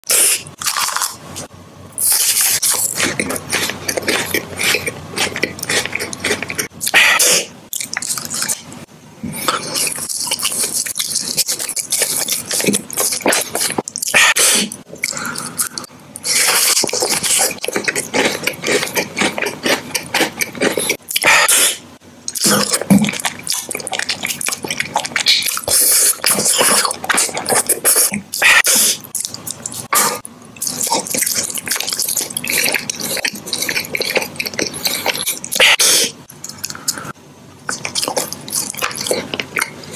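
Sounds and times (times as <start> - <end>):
biting and crunching wafer: 0.1 - 8.7, 9.4 - 21.6, 22.3 - 37.0, 37.7 - 39.9
crisp chewing: 0.2 - 21.5, 22.3 - 39.9.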